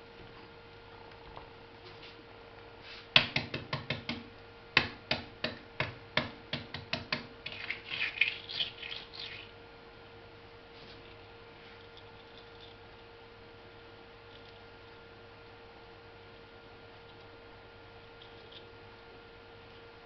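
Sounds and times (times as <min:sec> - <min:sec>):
egg shell tapping: 0:03.2 - 0:09.5
egg shell crackling: 0:07.4 - 0:09.6, 0:11.9 - 0:13.0.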